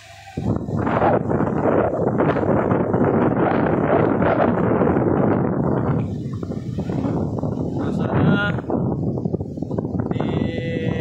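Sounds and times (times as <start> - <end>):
sea waves washing onto shore: 0.0 - 1.1
wind on microphone: 0.0 - 11.0.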